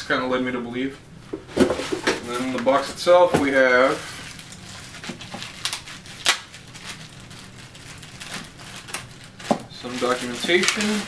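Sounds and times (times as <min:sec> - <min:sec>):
plastic bag and paper crinkling: 0:01.6 - 0:11.0.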